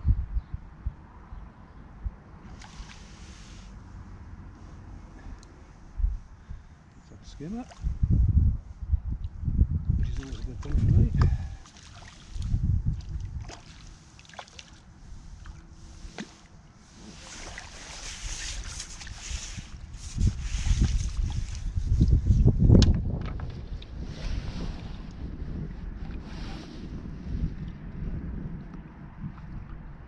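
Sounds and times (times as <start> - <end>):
wind buffeting microphone: 0.0 - 3.4, 5.2 - 14.1, 16.8 - 30.0
water splashing: 2.5 - 3.2, 10.0 - 19.8.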